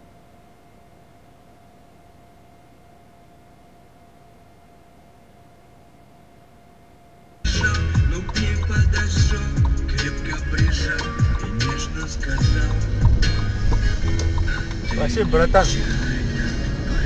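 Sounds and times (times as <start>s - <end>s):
faint steady hum: 0.0s - 17.0s
music with drums and sliding bass: 7.5s - 17.0s.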